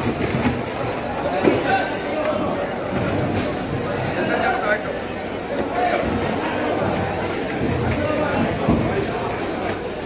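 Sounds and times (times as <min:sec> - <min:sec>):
people talking and calling out: 0:00.0 - 0:10.0.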